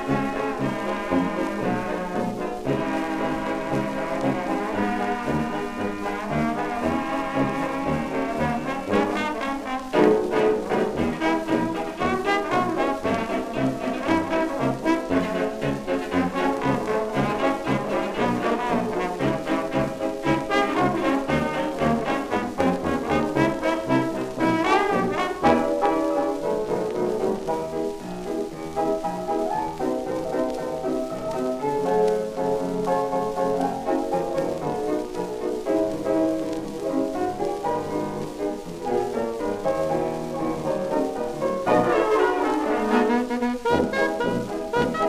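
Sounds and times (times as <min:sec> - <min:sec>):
dance orchestra with brass: 0:00.0 - 0:45.0
record surface noise: 0:00.0 - 0:45.0.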